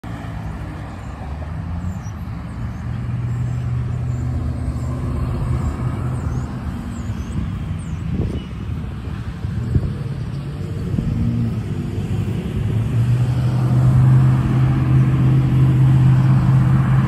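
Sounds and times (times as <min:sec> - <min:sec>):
cars on the road: 0:00.0 - 0:17.0.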